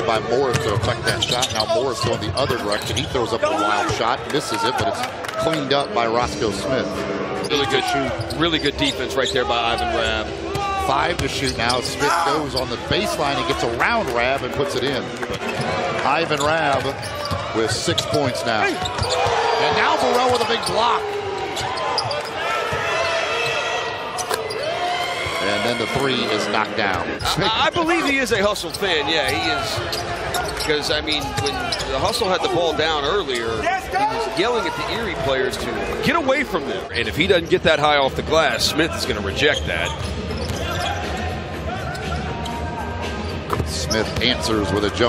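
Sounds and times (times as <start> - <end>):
music over public address: 33.1 - 45.0.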